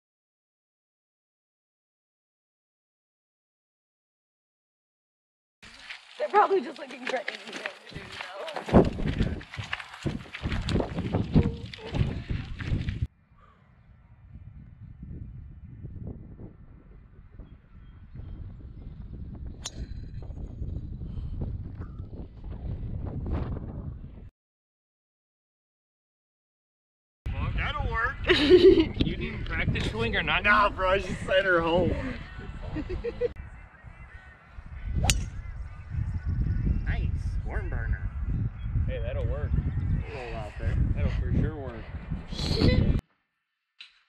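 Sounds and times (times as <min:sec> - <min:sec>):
wind buffeting microphone: 0:07.1 - 0:24.3, 0:27.3 - 0:43.0
low rumble: 0:08.7 - 0:24.3
golf club striking ball: 0:35.0 - 0:35.3.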